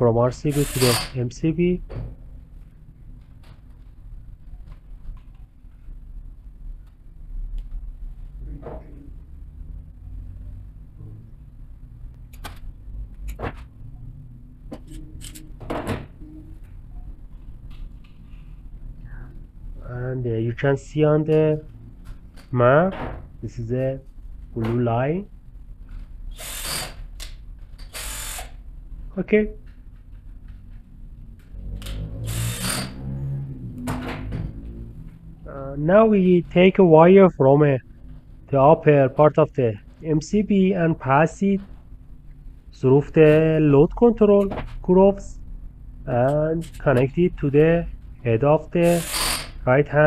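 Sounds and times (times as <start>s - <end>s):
cordless drill running: 0.5s - 1.0s, 27.8s - 28.6s, 32.3s - 32.9s
steady low rumble: 1.2s - 26.3s, 33.2s - 48.8s.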